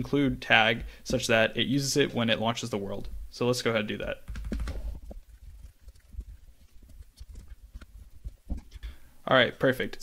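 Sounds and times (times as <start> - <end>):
keyboard and mouse clicks: 4.3 - 8.8.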